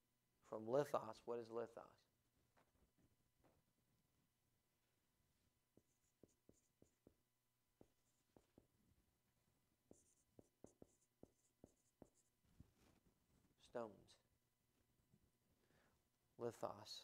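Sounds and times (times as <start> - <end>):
marker squeaking on whiteboard: 5.7 - 7.2, 7.8 - 8.7, 9.9 - 12.4
marker tapping on whiteboard: 5.7 - 8.8, 9.9 - 12.3.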